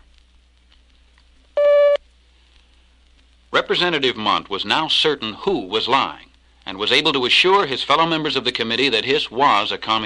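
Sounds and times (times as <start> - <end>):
faint hum: 0.0 - 10.0
short steady beep: 1.6 - 2.0.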